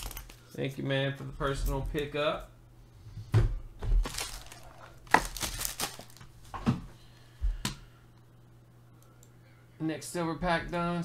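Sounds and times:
cards being handled: 4.0 - 6.4
wrapper crinkling: 4.0 - 6.5.

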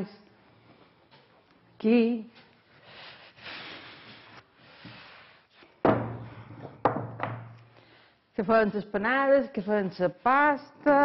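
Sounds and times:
woman's voice: 1.8 - 2.4, 8.4 - 11.0.

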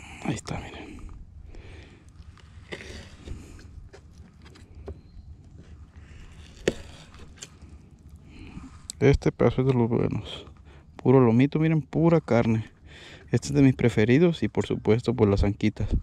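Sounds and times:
low steady rumble: 0.0 - 16.0.

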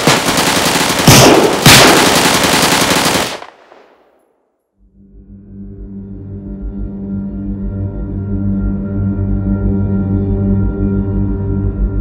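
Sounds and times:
rapid gunfire: 0.0 - 4.0
loud gunshot blasts: 1.0 - 2.4.

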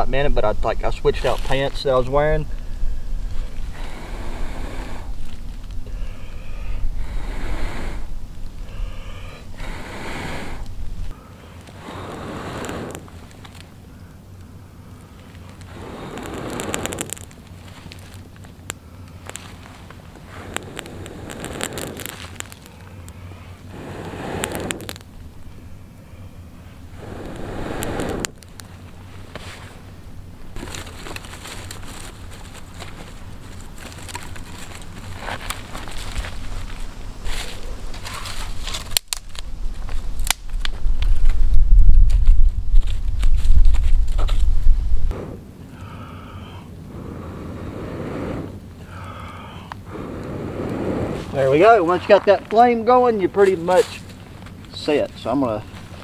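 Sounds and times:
wind buffeting microphone: 0.0 - 11.2, 19.6 - 22.7, 26.8 - 28.6, 39.4 - 45.6, 49.8 - 53.1
campfire crackling: 0.0 - 56.0
breaths blown onto coals: 2.5 - 29.9, 45.0 - 56.0
sticks rustling and snapping: 15.1 - 23.2, 30.6 - 41.4.

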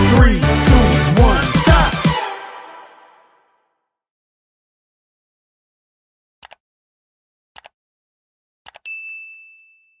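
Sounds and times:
notification bell ding: 8.8 - 10.0.

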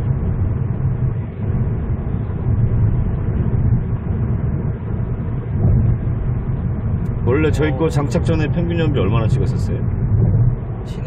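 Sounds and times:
road and engine rumble in car cabin: 0.0 - 11.0.

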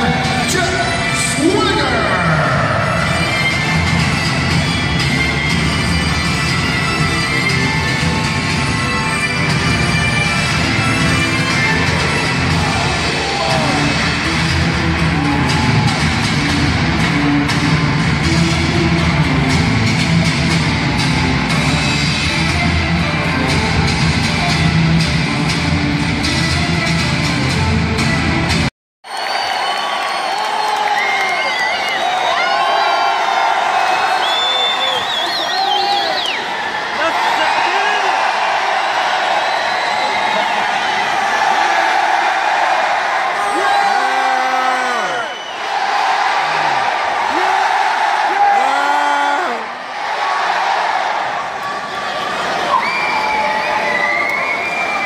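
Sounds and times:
crowd cheering and shouting: 0.0 - 55.0.

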